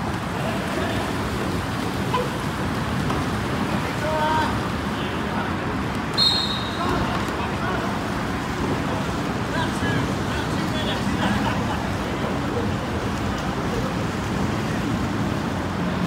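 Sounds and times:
short high whistle: 6.2 - 6.9.

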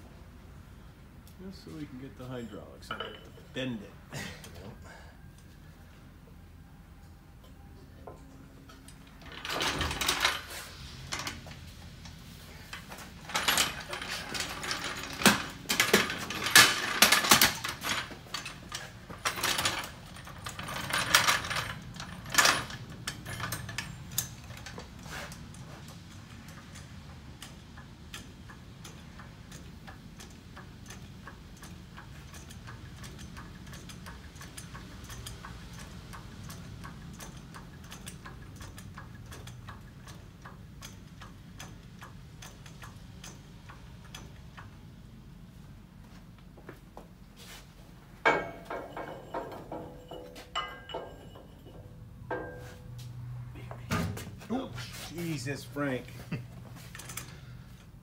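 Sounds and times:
metal clanks and knocks: 2.2 - 3.7, 12.7 - 26.8, 48.2 - 54.6.

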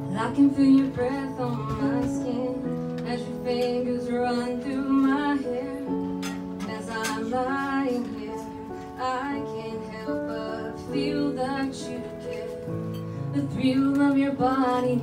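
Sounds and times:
piano chords: 0.0 - 15.0
woman singing: 0.0 - 15.0.

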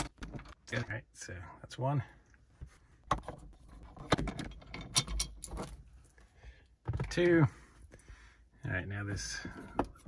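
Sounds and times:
screwdriver metallic clicks and rattles: 4.0 - 5.7.

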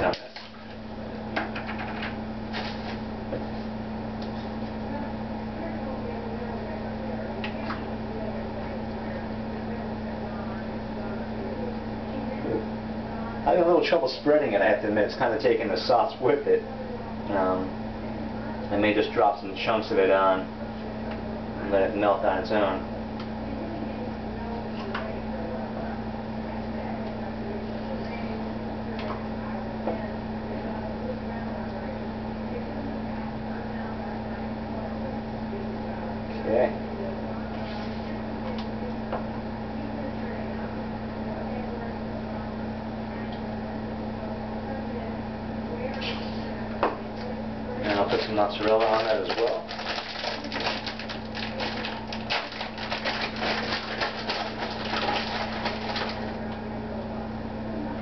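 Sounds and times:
kitchen appliance humming: 0.0 - 58.0.

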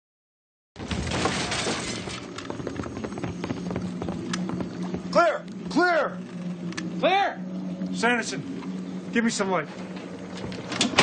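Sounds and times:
loud crash with shattering: 0.8 - 2.3.

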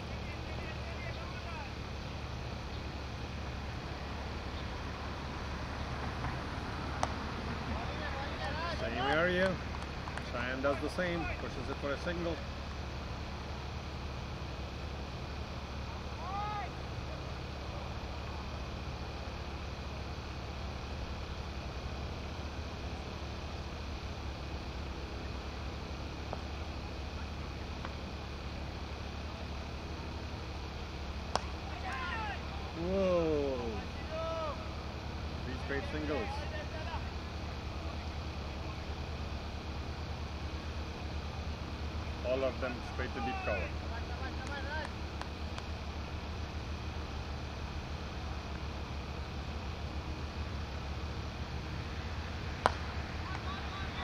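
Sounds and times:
players shouting: 0.0 - 2.0, 4.2 - 12.4, 15.8 - 17.5, 31.2 - 39.0, 42.2 - 45.0, 52.6 - 54.0
cricket bat hitting ball: 31.3 - 31.6, 52.6 - 53.5.

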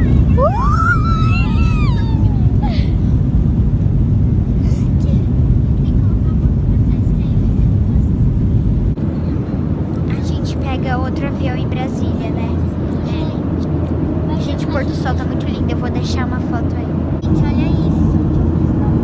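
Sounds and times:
engine hum in cabin: 0.0 - 19.0
jet cabin takeoff rumble: 0.0 - 19.0.

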